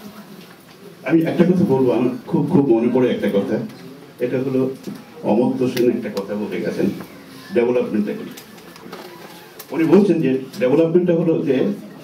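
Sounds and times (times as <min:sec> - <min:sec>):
man speaking: 0:01.0 - 0:08.4, 0:09.7 - 0:11.8.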